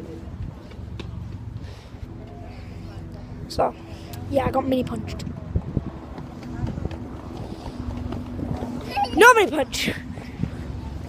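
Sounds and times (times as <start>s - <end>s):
faint voices: 0.0s - 11.0s
steady low hum: 0.0s - 11.0s
wind rumbling on microphone: 0.0s - 11.0s.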